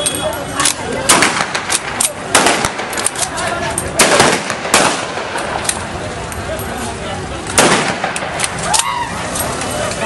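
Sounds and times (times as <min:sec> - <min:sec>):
people's voices: 0:00.0 - 0:10.0
vehicles: 0:00.0 - 0:10.0.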